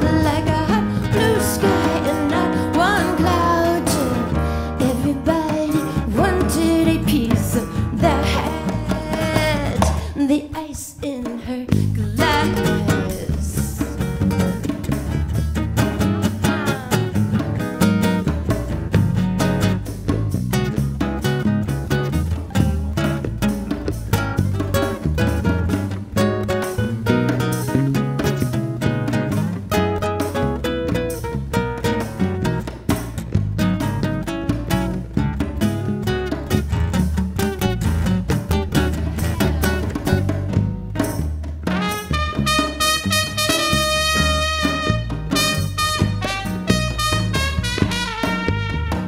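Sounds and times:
bass line: 0.0s - 10.2s, 11.7s - 49.0s
electric guitar: 0.0s - 10.3s, 11.7s - 49.0s
hand-drum beat: 0.0s - 10.4s, 11.0s - 49.0s
nylon-string guitar plucked: 0.0s - 10.4s, 11.7s - 49.0s.

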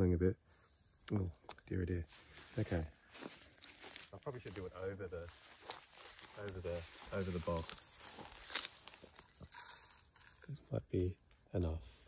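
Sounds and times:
dry seeds rustling: 2.0s - 12.0s.

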